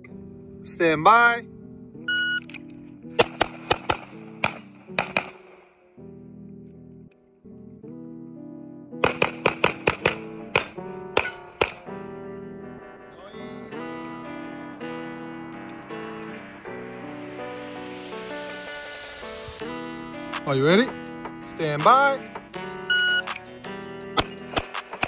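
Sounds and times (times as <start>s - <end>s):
shot timer beep: 2.1s - 2.4s, 22.9s - 23.3s
handgun shots: 3.2s - 5.7s, 9.0s - 11.9s, 24.2s - 25.0s
acoustic guitar music: 6.0s - 18.9s, 19.6s - 25.0s.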